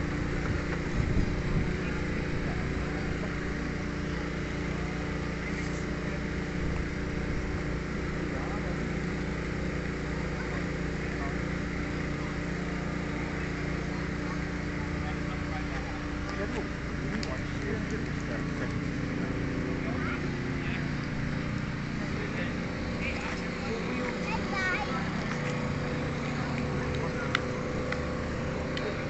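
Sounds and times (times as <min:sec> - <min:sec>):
engine hum: 0:00.0 - 0:29.0
faint voices: 0:00.1 - 0:29.0.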